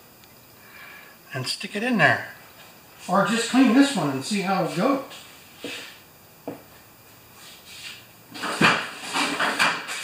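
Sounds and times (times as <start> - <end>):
rustling and clattering objects: 7.4 - 10.0.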